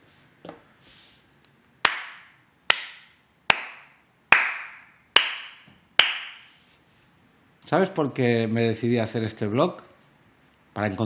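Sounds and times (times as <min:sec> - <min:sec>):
hand claps with echo: 0:01.8 - 0:06.5.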